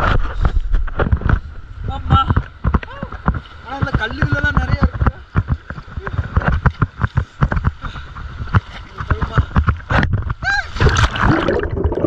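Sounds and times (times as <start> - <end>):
water splashing from wading: 7.2 - 12.0.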